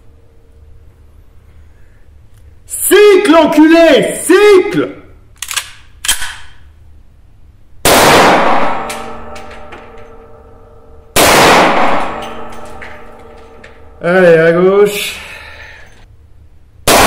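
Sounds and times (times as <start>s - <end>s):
pistol metallic clicks: 5.3s - 6.7s
pistol shots with ringing decay: 7.9s - 14.0s.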